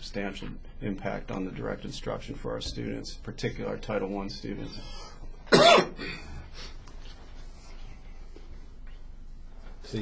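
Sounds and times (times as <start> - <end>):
loud cough: 5.5 - 6.2.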